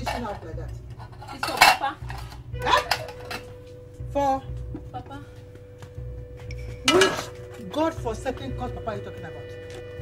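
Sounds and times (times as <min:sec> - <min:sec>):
pots and dishes clattering: 0:00.0 - 0:03.6, 0:06.5 - 0:07.6.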